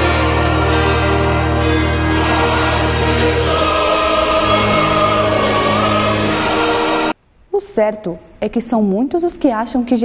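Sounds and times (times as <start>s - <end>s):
choir singing sustained chords: 0.0s - 7.2s.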